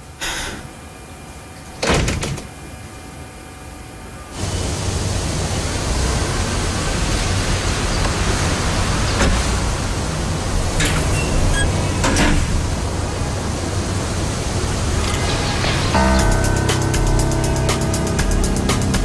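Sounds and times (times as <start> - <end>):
loud steady hiss: 0.0 - 0.9, 4.3 - 19.0.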